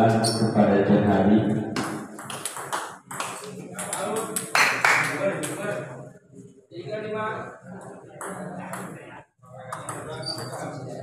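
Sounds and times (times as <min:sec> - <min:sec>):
ball bouncing on table: 0:01.8 - 0:04.5, 0:09.7 - 0:10.7
table tennis ball clicking off paddles: 0:01.8 - 0:04.5.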